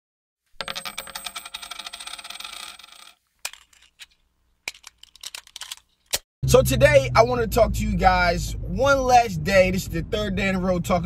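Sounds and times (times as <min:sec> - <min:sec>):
rattle of metallic clicks and jingles: 0:01.0 - 0:06.1.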